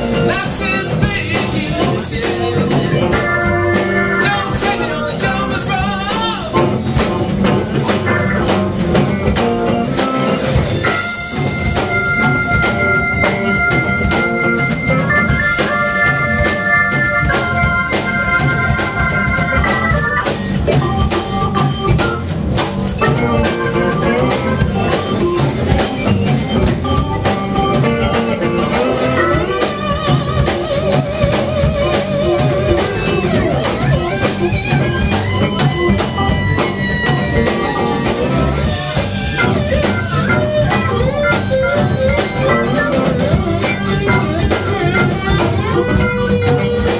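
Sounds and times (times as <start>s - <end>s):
bass: 0.0s - 46.9s
drum beat: 0.0s - 46.9s
electric guitars: 0.0s - 46.9s
organ-toned keyboard: 0.0s - 46.9s
pedal steel guitar: 0.0s - 46.9s.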